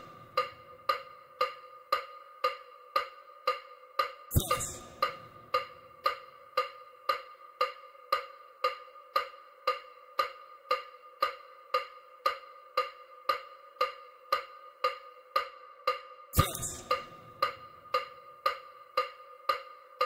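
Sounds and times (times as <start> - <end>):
wood-block-like tone repeating: 4.3 - 6.2, 16.4 - 18.2.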